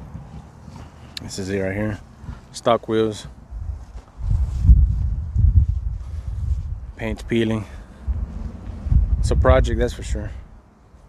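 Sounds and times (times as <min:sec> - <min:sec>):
wind rumbling on microphone: 0:00.0 - 0:02.6, 0:03.2 - 0:10.7
footsteps on dirt: 0:00.0 - 0:07.4, 0:08.1 - 0:09.0.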